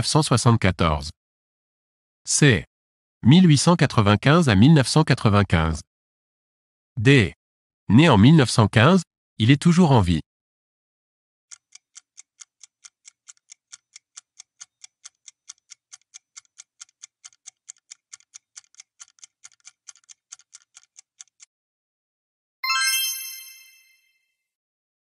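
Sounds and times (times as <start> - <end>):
fast clock ticks: 11.5 - 21.5
bright chime: 22.6 - 24.3.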